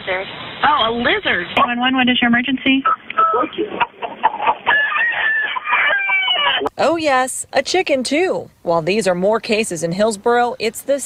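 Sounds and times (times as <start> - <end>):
chicken calling over telephone: 4.2 - 6.7.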